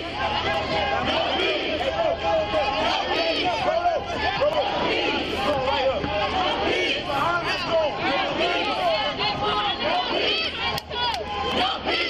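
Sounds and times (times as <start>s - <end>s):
crowd of protesters shouting: 0.0s - 12.0s.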